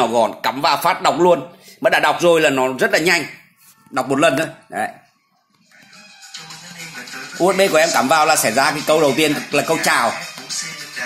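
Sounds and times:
music from car speaker: 0:03.5 - 0:11.0.

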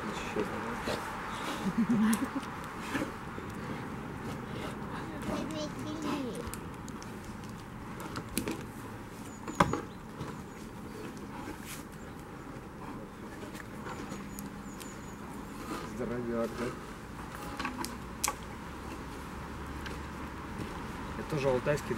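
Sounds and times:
outdoor background noise: 0:00.0 - 0:21.9.

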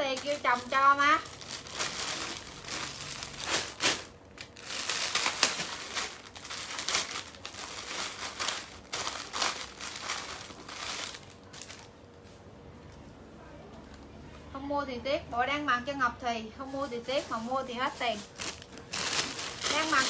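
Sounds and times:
plastic bags crinkling and rustling: 0:00.0 - 0:12.2, 0:16.6 - 0:20.0.

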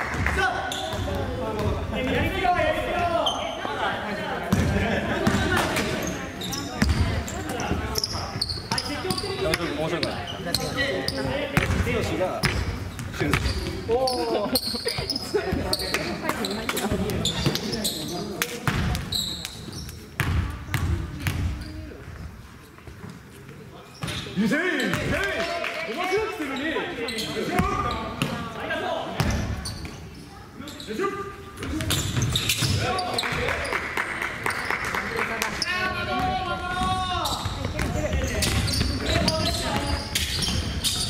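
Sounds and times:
chatter of voices: 0:00.4 - 0:19.1
shoe squeaks: 0:00.6 - 0:01.1, 0:03.2 - 0:03.8, 0:05.8 - 0:11.3, 0:12.4 - 0:18.4, 0:19.0 - 0:20.1, 0:23.8 - 0:25.0, 0:26.6 - 0:28.2, 0:29.5 - 0:33.6, 0:36.9 - 0:41.0
basketball bouncing on wooden floor: 0:36.2 - 0:40.7.

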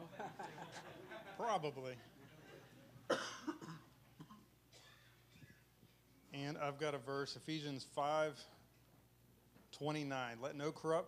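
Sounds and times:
person coughing: 0:03.1 - 0:05.6.

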